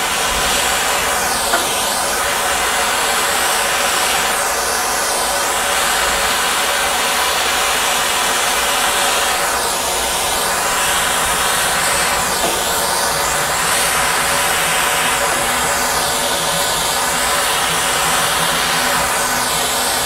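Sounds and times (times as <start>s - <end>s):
gas torch flame hissing: 0.0s - 20.0s.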